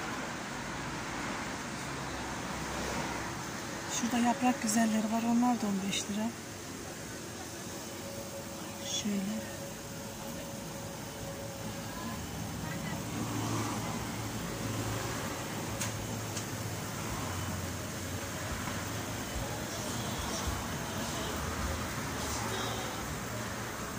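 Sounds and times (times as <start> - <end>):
street traffic noise: 0.0 - 23.9
vehicle engine hum: 0.0 - 23.9
faint voice: 19.2 - 23.9.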